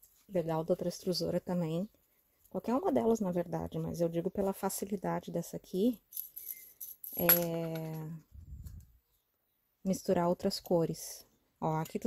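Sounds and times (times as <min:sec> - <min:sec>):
light metallic clinks: 0:06.1 - 0:07.9.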